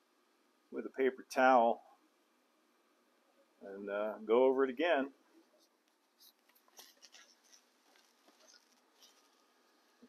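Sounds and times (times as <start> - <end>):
paper towel rubbing on resin: 5.6 - 10.0.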